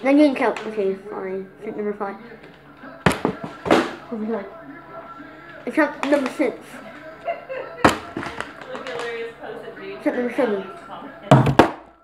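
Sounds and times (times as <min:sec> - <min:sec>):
child's voice: 0:00.0 - 0:02.2
plastic bottle knocking on countertop: 0:11.3 - 0:11.8.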